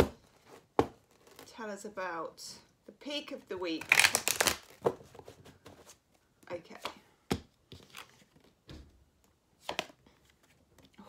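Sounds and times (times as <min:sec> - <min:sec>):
cards being shuffled: 0:03.8 - 0:06.0, 0:07.7 - 0:08.6.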